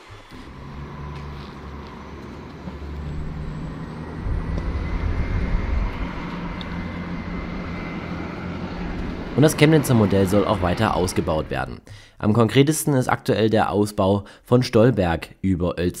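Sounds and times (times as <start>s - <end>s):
tram running on track: 0.0s - 11.8s.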